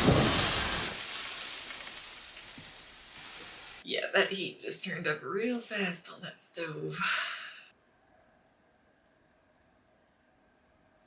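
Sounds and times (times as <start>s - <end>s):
fire extinguisher spraying: 0.0s - 3.8s.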